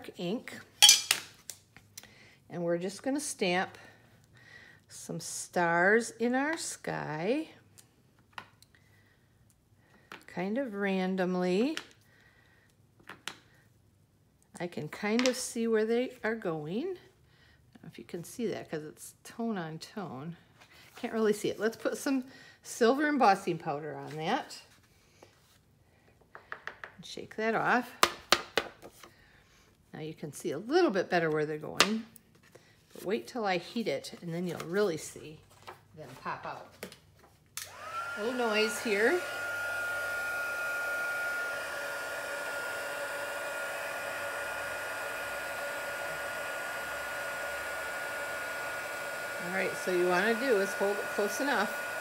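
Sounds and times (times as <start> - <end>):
heat gun blowing with high whine: 37.6 - 52.0.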